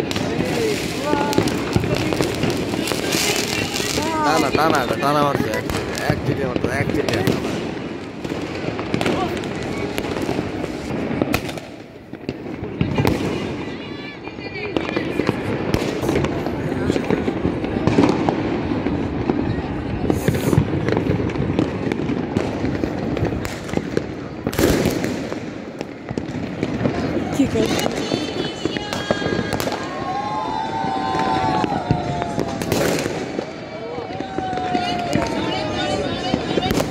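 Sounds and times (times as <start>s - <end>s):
fireworks bangs and crackles: 0.0s - 36.9s.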